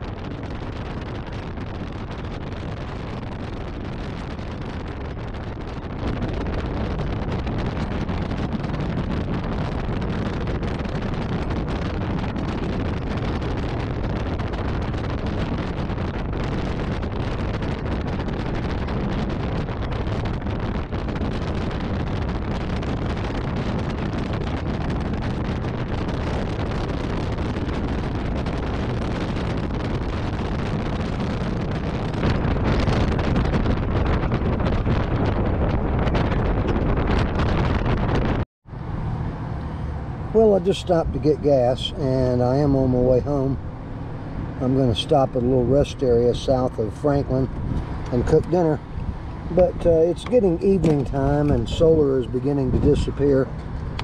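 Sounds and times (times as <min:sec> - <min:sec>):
motorcycle engine droning: 0:00.0 - 0:54.0
wind rush on microphone: 0:00.0 - 0:54.0.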